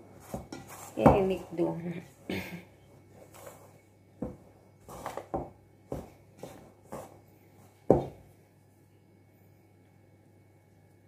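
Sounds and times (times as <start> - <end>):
dough knocking in metal bowl: 0.3 - 1.5, 4.2 - 7.2, 7.8 - 8.2.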